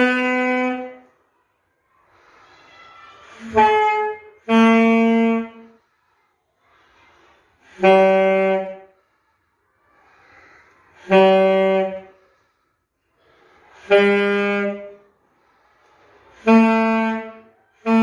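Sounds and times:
saxophone playing long notes: 0:00.0 - 0:01.0, 0:03.4 - 0:05.6, 0:07.7 - 0:08.8, 0:11.0 - 0:12.1, 0:13.8 - 0:14.9, 0:16.4 - 0:18.0
person breathing in: 0:01.8 - 0:03.4, 0:05.6 - 0:16.5.

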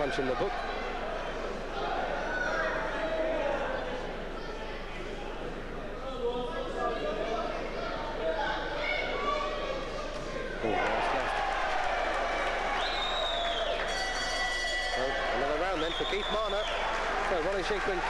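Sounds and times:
crowd shouting and whistling: 0:10.6 - 0:18.0
boxing bell ringing: 0:13.9 - 0:15.5.

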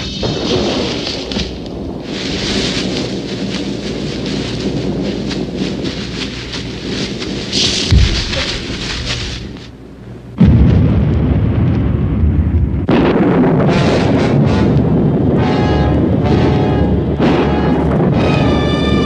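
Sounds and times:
hissy rumbling film soundtrack: 0:00.0 - 0:19.0
trampling feet: 0:00.4 - 0:09.7
clothes rustling: 0:02.1 - 0:09.8
heavy thud: 0:07.5 - 0:09.5.

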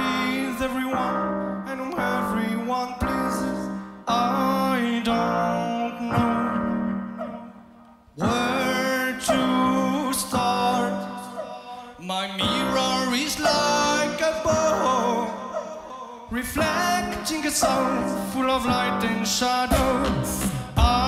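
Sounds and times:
layered vocal loops: 0:00.0 - 0:21.0
melodic sung phrases: 0:00.0 - 0:21.0.

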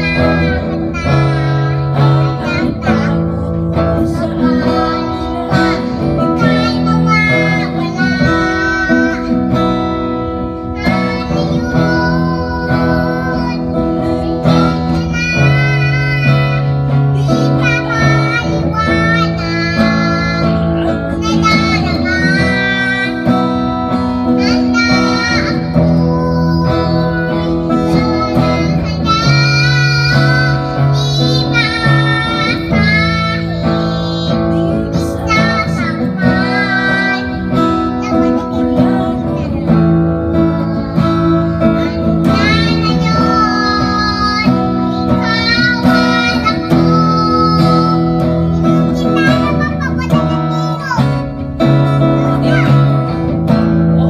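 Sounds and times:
acoustic guitar: 0:00.0 - 0:54.0
girl singing into microphone: 0:00.0 - 0:54.0.

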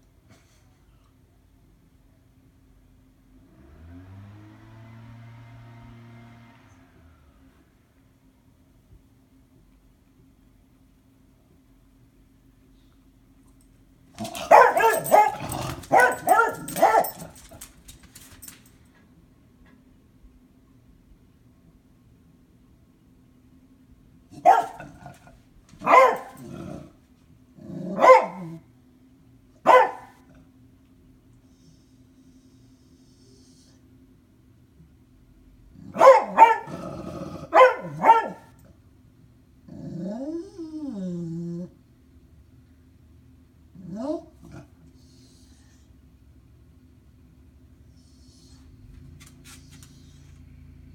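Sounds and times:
dog crying: 0:14.2 - 0:17.3
dog barking: 0:14.2 - 0:17.6, 0:24.4 - 0:25.2, 0:25.8 - 0:26.5, 0:27.9 - 0:28.6, 0:29.6 - 0:30.3, 0:35.8 - 0:36.8, 0:37.4 - 0:38.6
dog growling: 0:14.2 - 0:17.6, 0:24.4 - 0:27.0, 0:27.6 - 0:28.6, 0:35.8 - 0:38.4, 0:39.6 - 0:41.8, 0:43.8 - 0:44.8.

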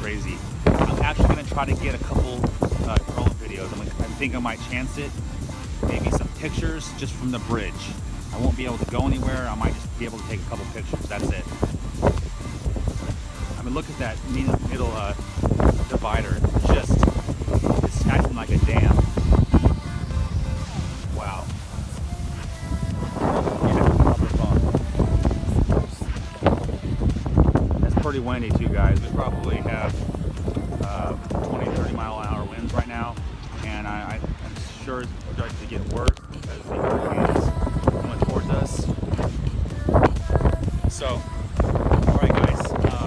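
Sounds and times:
wind rumbling on microphone: 0:00.0 - 0:43.0.

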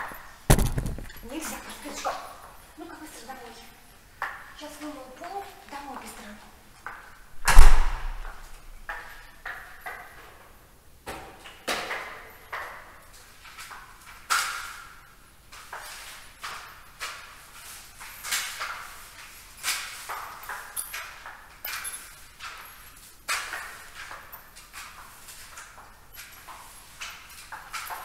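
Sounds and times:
heavy thump: 0:00.5 - 0:01.2, 0:07.4 - 0:08.5
light irregular knocks and bumps: 0:00.5 - 0:01.3
short swishes: 0:07.4 - 0:08.5.

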